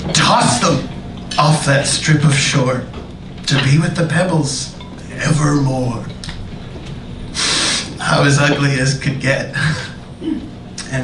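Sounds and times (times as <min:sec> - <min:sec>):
sharp breath intake: 0:07.4 - 0:08.0.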